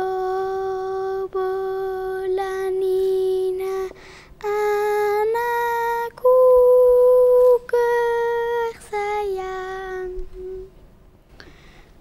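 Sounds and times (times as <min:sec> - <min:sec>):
girl singing unaccompanied: 0:00.0 - 0:10.8.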